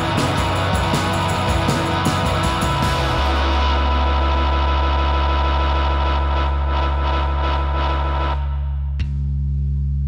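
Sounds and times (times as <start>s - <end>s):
droning guitar and bass chord: 0.0s - 10.0s.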